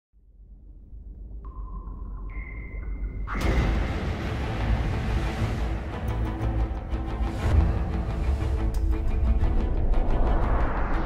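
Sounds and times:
deep rumble: 7.4s - 11.0s.

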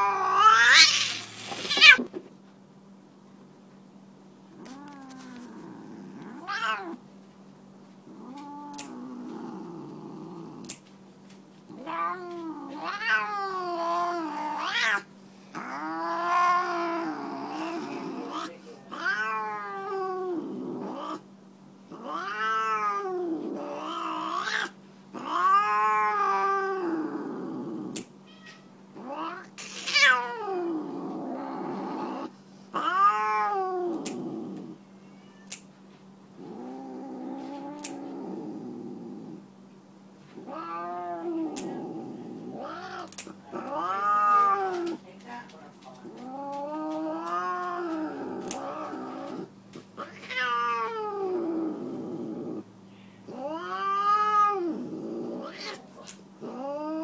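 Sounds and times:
cat yowling: 0.0s - 2.0s, 6.2s - 7.0s, 11.7s - 20.2s, 21.9s - 27.0s, 28.3s - 30.7s, 32.8s - 34.3s, 42.6s - 45.0s, 50.0s - 51.8s, 53.3s - 54.8s
nail clipper clicks: 8.7s - 9.0s, 10.6s - 10.8s, 27.9s - 28.1s, 34.0s - 34.2s, 35.5s - 35.7s, 37.8s - 38.0s, 43.0s - 43.3s, 48.4s - 48.7s.

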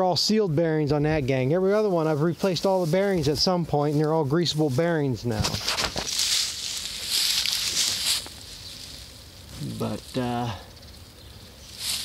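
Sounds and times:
footsteps through dry grass: 1.7s - 12.0s.

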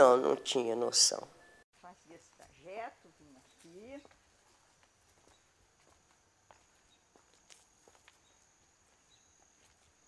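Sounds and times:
footsteps on stone paving: 3.4s - 10.0s.

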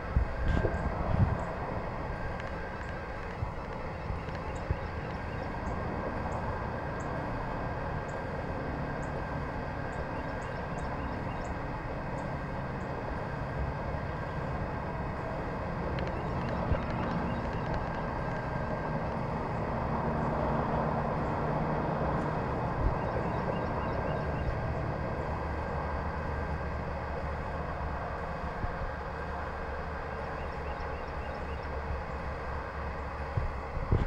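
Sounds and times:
mechanical rumble with low hum: 0.0s - 34.0s.

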